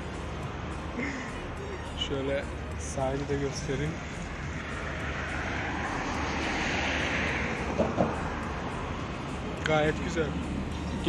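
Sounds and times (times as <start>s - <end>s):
outdoor rushing noise: 0.0s - 11.0s
low hum: 3.7s - 9.6s.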